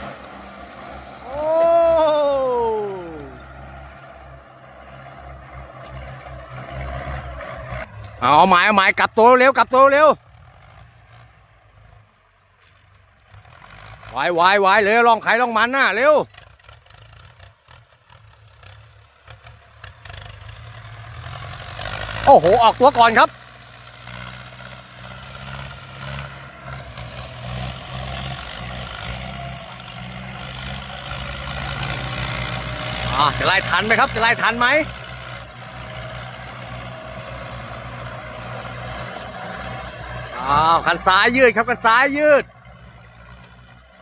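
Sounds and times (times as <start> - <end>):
tractor engines rumbling: 0.0 - 44.0.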